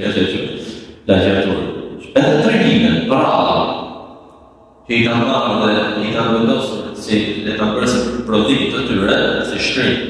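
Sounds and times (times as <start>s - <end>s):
man speaking in chant-like tone: 0.0s - 3.8s, 4.8s - 10.0s.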